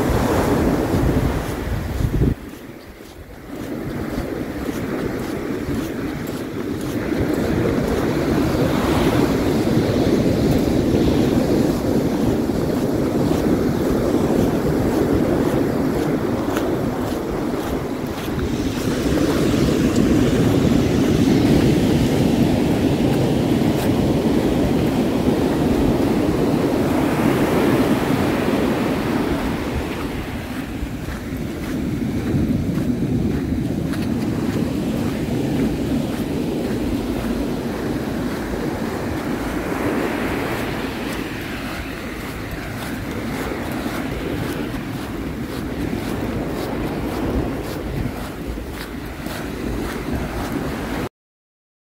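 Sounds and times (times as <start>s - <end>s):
surf washing up pebbly beach: 0.0s - 51.1s.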